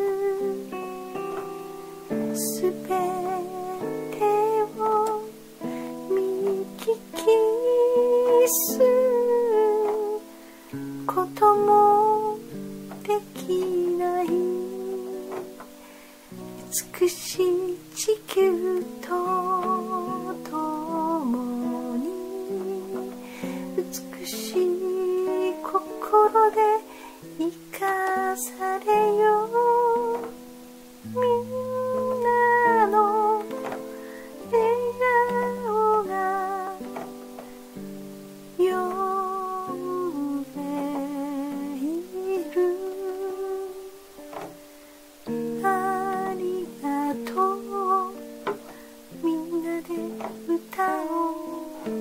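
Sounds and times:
person singing long wavering notes: 0.0s - 15.8s, 16.4s - 37.2s, 38.6s - 44.3s, 45.2s - 52.0s
plucked-string accompaniment: 0.0s - 52.0s
slow gliding melody: 0.0s - 52.0s.

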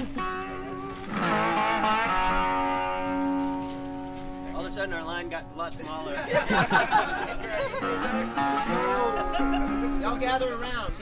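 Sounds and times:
resonator guitar chord strummed: 0.0s - 6.2s, 7.8s - 10.9s.

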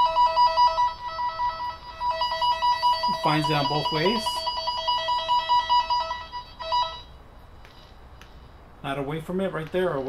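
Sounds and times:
two-note electronic warble: 0.0s - 7.2s.

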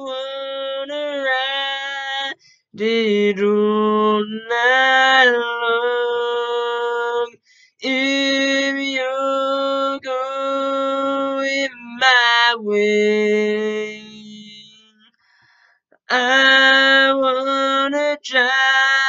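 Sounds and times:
man singing a cappella: 0.0s - 15.0s, 16.1s - 19.0s.

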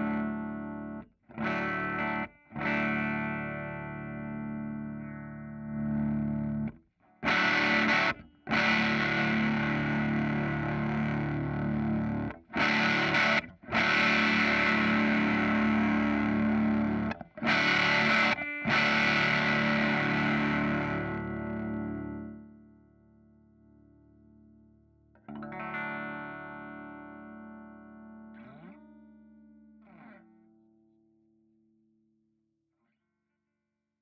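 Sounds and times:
overdriven electric guitar chords: 0.0s - 30.9s.

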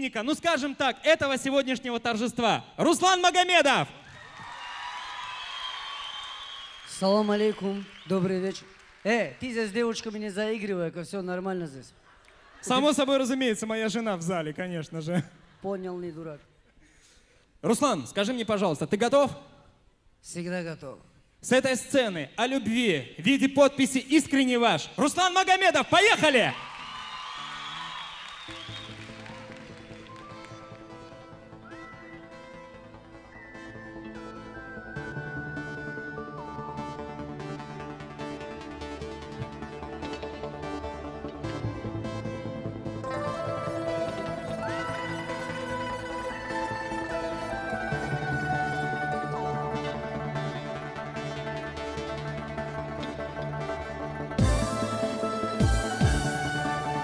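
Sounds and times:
audience applauding and cheering: 4.0s - 10.4s, 26.2s - 57.0s
steady bass line: 29.0s - 57.0s.

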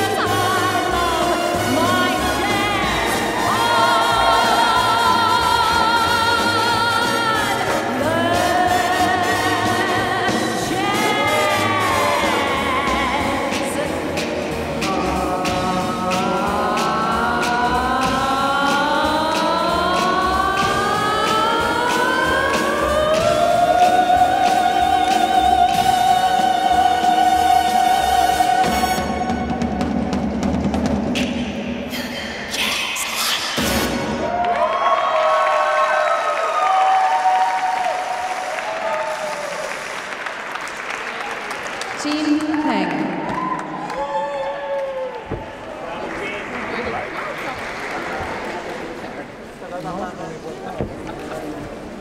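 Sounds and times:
cheering calls: 34.2s - 49.0s
audience applause: 34.3s - 49.8s.

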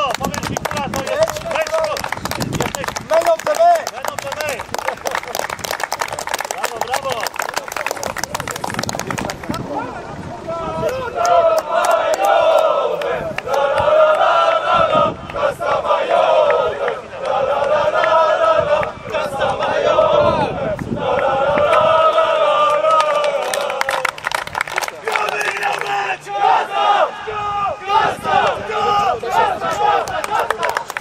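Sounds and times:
players chanting together: 10.5s - 24.0s, 25.8s - 31.0s
people shouting: 25.0s - 30.9s.

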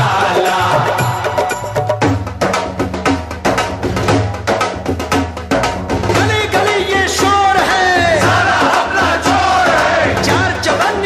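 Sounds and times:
chorus singing: 0.0s - 1.8s, 6.5s - 11.0s
band accompaniment: 0.0s - 11.0s.

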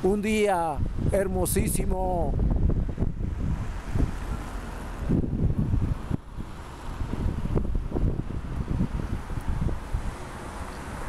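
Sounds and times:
street traffic hum: 0.0s - 11.0s
wind buffeting microphone: 0.0s - 11.0s.

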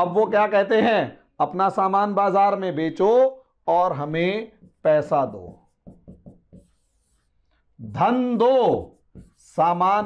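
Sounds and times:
marker writing on board: 4.5s - 10.0s.

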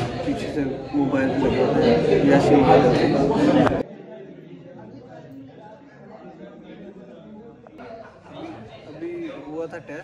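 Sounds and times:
students chattering: 0.0s - 10.0s.

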